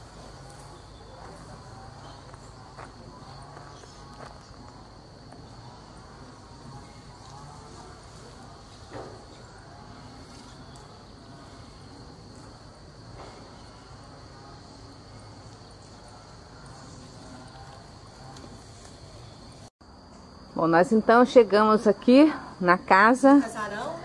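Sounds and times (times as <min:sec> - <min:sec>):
insect buzz: 0:00.0 - 0:24.0.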